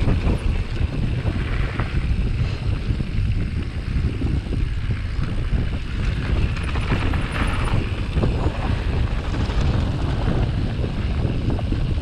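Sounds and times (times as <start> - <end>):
low rumble of bike on gravel: 0.0 - 12.0
wind buffeting microphone: 0.0 - 12.0.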